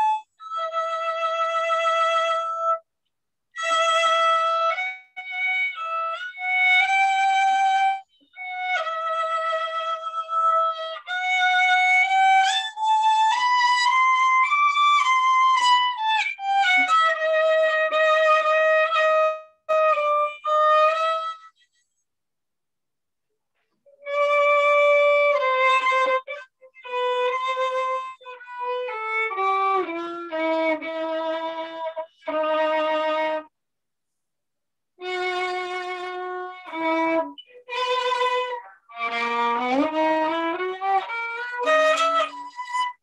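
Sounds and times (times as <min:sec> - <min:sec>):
solo violin melody: 0:00.0 - 0:02.9, 0:03.5 - 0:22.0, 0:23.9 - 0:33.5, 0:35.0 - 0:43.0.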